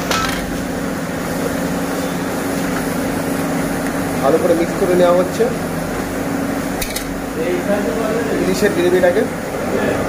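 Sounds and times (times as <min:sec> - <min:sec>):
constant low hum: 0:06.6 - 0:07.4.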